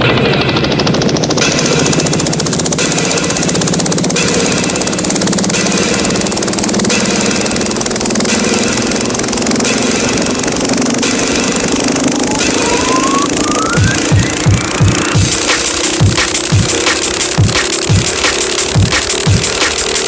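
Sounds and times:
drum and bass music: 0:00.0 - 0:20.0
rising sweep: 0:11.6 - 0:15.2.

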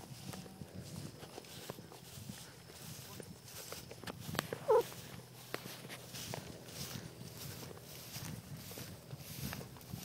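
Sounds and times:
footsteps through tall grass: 0:00.0 - 0:10.0.

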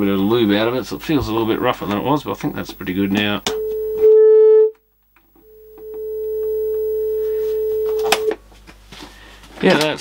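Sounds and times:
steady test tone: 0:00.0 - 0:08.4.

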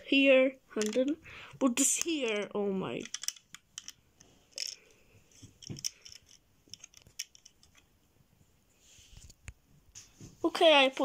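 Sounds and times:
plastic bricks clicking: 0:00.7 - 0:01.2, 0:01.8 - 0:04.9, 0:05.6 - 0:07.9.

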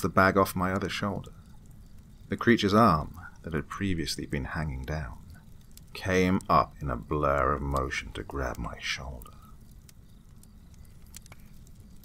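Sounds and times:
campfire crackles and pops: 0:00.0 - 0:12.0.

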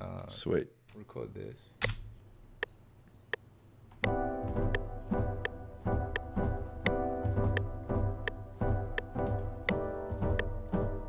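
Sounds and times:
metronome ticking: 0:04.0 - 0:10.6.

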